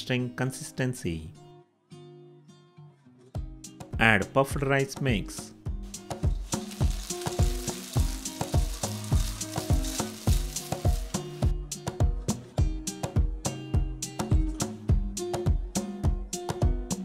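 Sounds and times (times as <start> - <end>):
syrup sizzling in a pan: 5.8 - 11.5.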